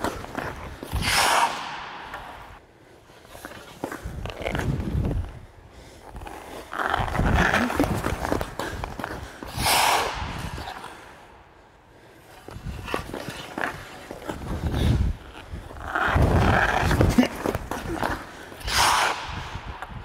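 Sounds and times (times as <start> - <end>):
skate blades scraping ice: 0.0 - 20.0.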